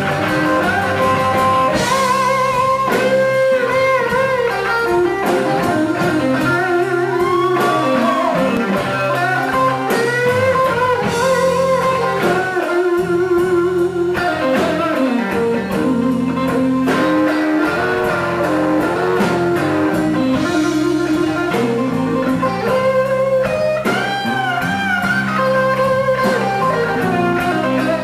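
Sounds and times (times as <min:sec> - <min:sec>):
bass: 0:00.0 - 0:28.0
drums: 0:00.0 - 0:28.0
lead guitar bending notes: 0:00.0 - 0:28.0.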